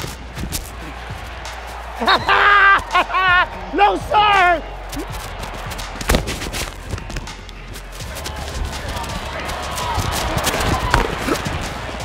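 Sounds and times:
crowd noise rumble: 0:00.0 - 0:12.0
clicks of running feet and gear: 0:04.9 - 0:11.9.

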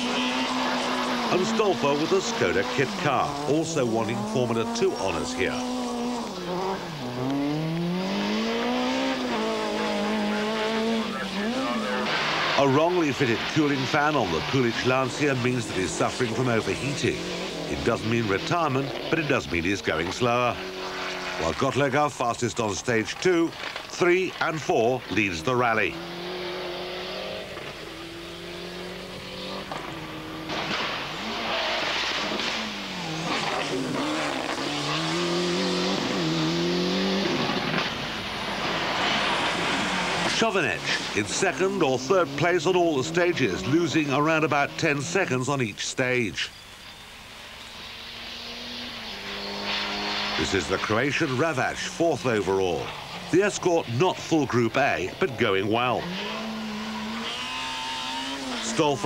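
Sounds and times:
rally car engine at full throttle: 0:00.0 - 0:59.0
road and wind noise: 0:00.0 - 0:59.0.

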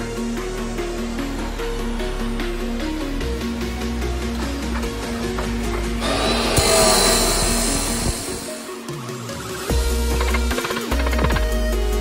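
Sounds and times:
background music: 0:00.0 - 0:12.0
chop saw cutting steel: 0:06.0 - 0:09.0.

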